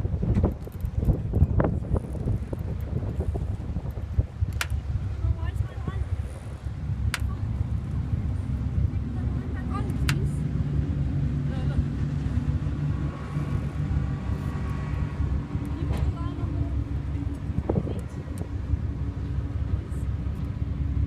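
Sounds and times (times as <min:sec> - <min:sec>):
boat engine humming: 0:00.0 - 0:21.0.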